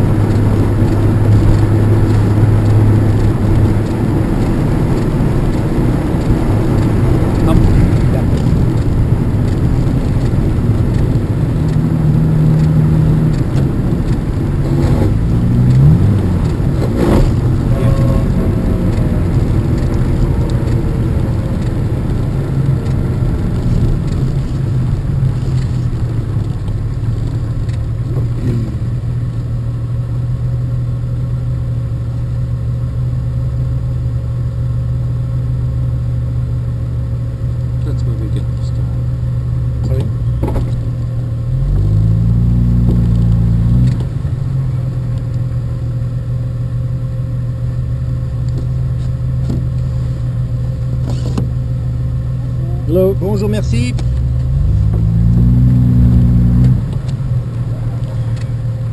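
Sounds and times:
car engine running at low speed: 0.0 - 58.9.

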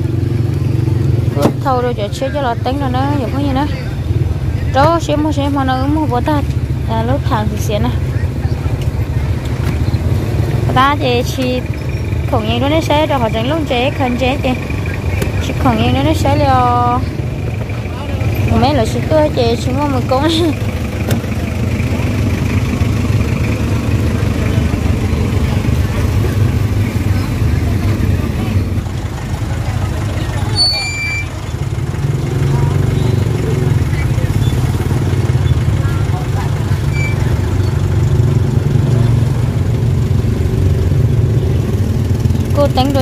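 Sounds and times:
vehicle engine idling: 0.0 - 43.0
people talking: 0.8 - 22.2, 23.4 - 31.6, 32.2 - 38.0, 42.4 - 43.0.

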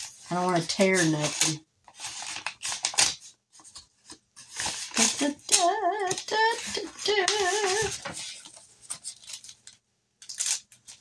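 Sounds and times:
paper rustling and tearing: 0.0 - 11.0.

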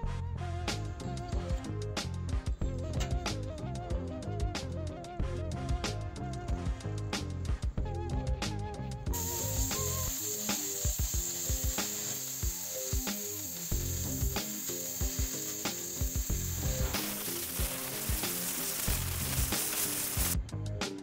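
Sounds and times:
background music with drum beat: 0.0 - 21.0
cutting torch hissing: 9.2 - 20.4.

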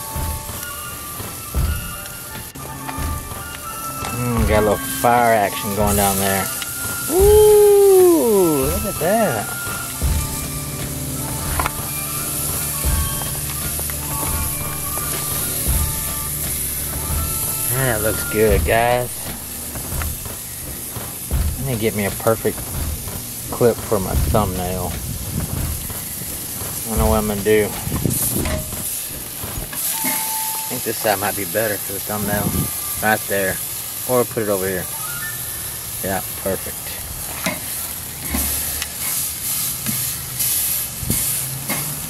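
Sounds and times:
steak sizzling on a grill: 0.0 - 42.0.

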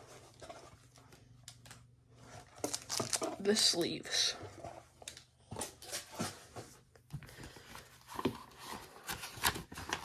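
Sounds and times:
packaging rustling and clicking: 2.4 - 3.6, 8.0 - 10.0.

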